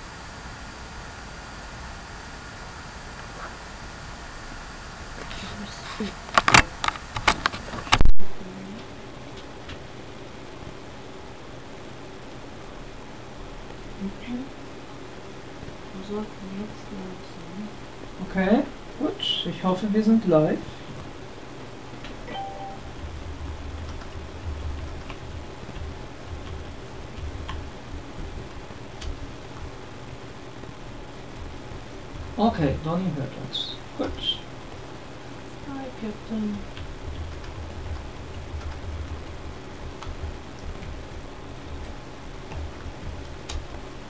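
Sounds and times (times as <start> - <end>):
low room noise rumble: 0.0 - 44.0
faint clicks: 23.8 - 29.7, 41.5 - 43.8.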